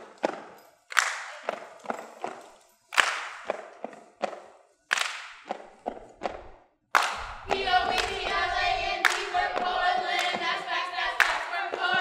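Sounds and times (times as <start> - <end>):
group clapping a rhythm: 0.0 - 12.0.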